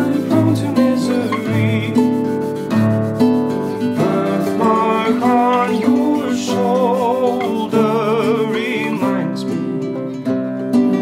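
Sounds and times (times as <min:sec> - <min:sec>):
man singing: 0:00.0 - 0:02.4, 0:03.9 - 0:10.2
fingerpicked acoustic guitar: 0:00.0 - 0:11.0.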